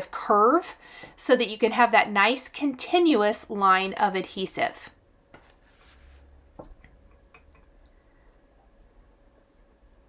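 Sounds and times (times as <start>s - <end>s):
low steady hum: 0.0s - 10.0s
soft paper rustle: 5.4s - 6.3s.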